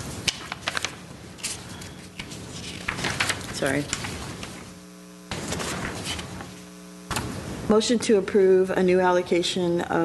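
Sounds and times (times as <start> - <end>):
electrical mains hum: 0.0 - 10.0
rustling noise: 5.3 - 6.7.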